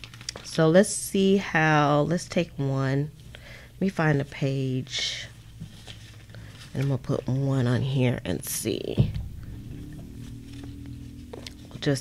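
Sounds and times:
paper pages turning: 0.0s - 0.6s, 5.5s - 7.4s.

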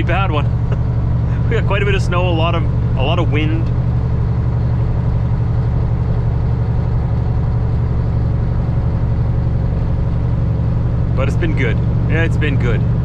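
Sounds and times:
road noise: 0.0s - 13.0s
truck diesel engine drone: 0.0s - 13.0s.

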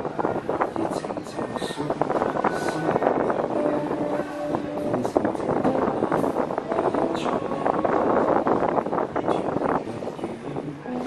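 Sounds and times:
wind noise on microphone: 0.0s - 11.0s
acoustic guitar playing: 2.2s - 9.1s, 10.7s - 11.0s.

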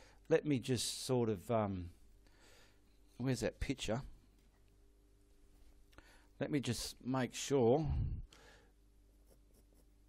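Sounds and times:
paintbrush scratching on canvas: 9.0s - 10.0s.

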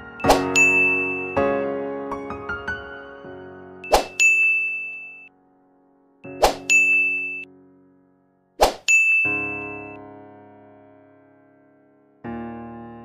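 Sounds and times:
soft piano chord: 0.0s - 4.6s, 5.2s - 8.6s, 9.3s - 13.0s
quick swish: 0.2s - 0.6s, 3.9s - 4.2s, 6.3s - 6.7s, 8.6s - 8.9s
bright bell-like ding: 0.2s - 1.4s, 3.9s - 5.3s, 6.6s - 7.4s, 8.8s - 10.0s.

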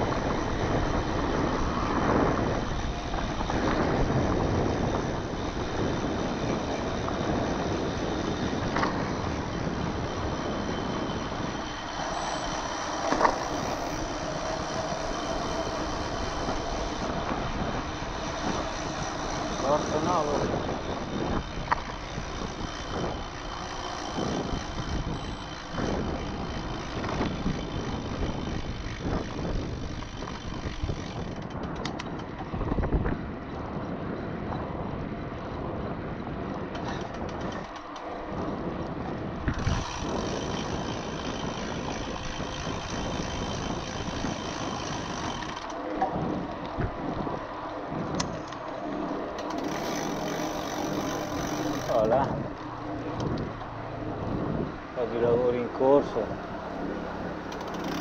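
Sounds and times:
bike tyres rolling on rough lane: 0.0s - 58.0s
wind rushing over microphone: 0.0s - 58.0s.

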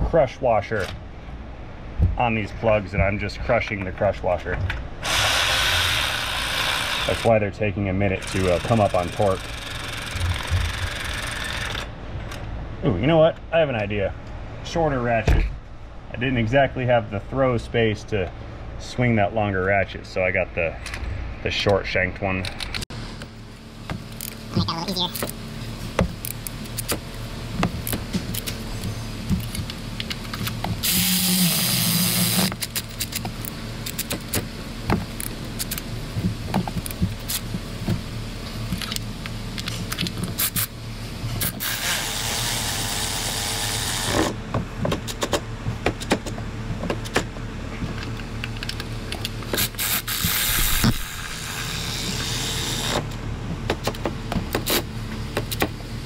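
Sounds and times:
cordless electric ratchet running: 5.0s - 7.3s, 8.1s - 11.9s, 30.8s - 32.5s, 41.5s - 44.3s, 49.6s - 53.0s.

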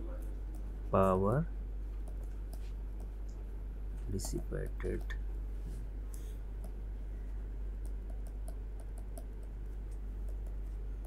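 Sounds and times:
low electrical hum: 0.0s - 11.0s
stylus tapping on tablet: 7.8s - 10.6s.

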